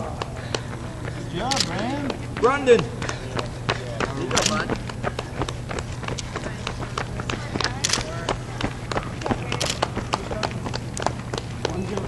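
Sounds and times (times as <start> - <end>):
running footsteps on asphalt: 0.0 - 12.0.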